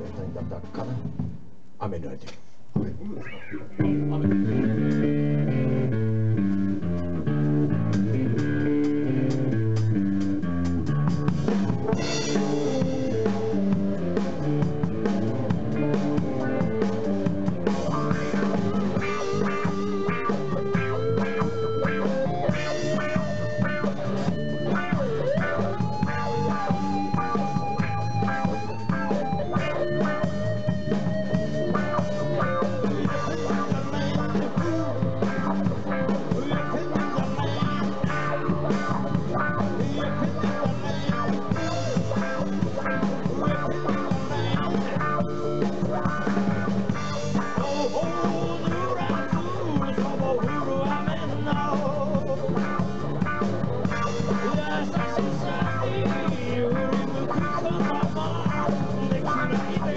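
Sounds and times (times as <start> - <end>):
drum kit: 0.0 - 59.9
electric guitar chords: 3.2 - 59.9
wavering lead melody: 3.6 - 59.9.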